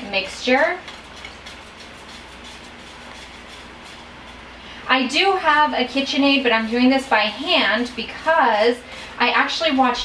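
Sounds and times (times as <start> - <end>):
steady low hiss: 0.0 - 10.0
whisk scraping bowl: 0.0 - 10.0.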